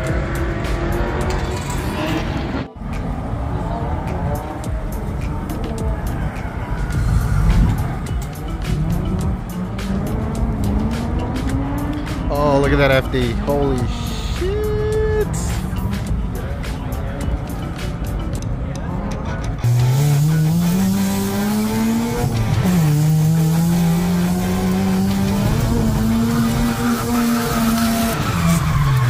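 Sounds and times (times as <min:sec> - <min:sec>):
noisy rumble of event crowd: 0:00.0 - 0:12.2, 0:14.0 - 0:19.7
car engine revving hard: 0:00.0 - 0:12.3, 0:19.6 - 0:29.0
tire squeal: 0:03.8 - 0:09.9, 0:19.6 - 0:29.0.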